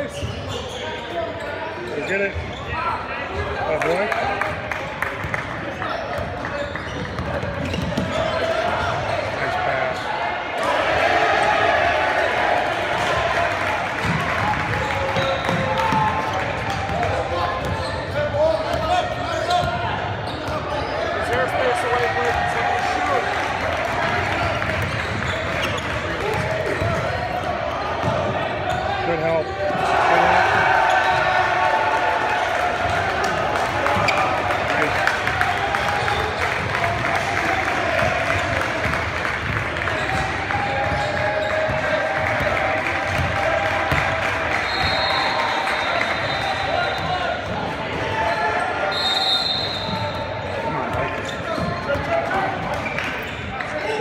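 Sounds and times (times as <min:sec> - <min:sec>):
basketball bouncing on court: 0:05.1 - 0:09.1, 0:13.9 - 0:20.9, 0:24.0 - 0:28.8, 0:33.8 - 0:45.0, 0:50.8 - 0:53.4.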